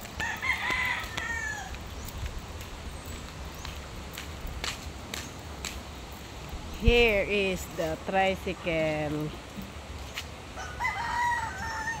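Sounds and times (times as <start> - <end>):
rooster crowing: 0.2 - 1.8, 10.6 - 12.0.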